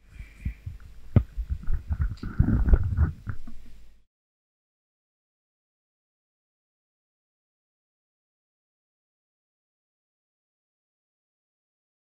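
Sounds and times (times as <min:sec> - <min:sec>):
microphone handling noise: 0:00.1 - 0:03.8.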